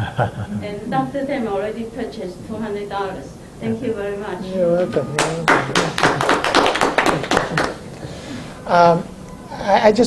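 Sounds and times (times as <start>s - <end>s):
hand clapping: 5.2s - 7.9s.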